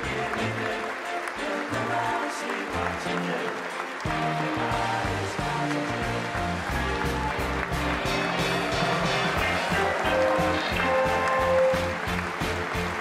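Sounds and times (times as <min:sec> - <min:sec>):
crowd applauding: 0:00.0 - 0:13.0
upbeat music: 0:00.0 - 0:13.0.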